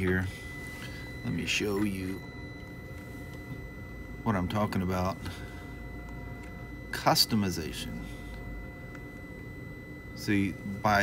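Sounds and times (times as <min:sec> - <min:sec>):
high electrical tones: 0:00.0 - 0:11.0
low electrical hum: 0:00.0 - 0:11.0.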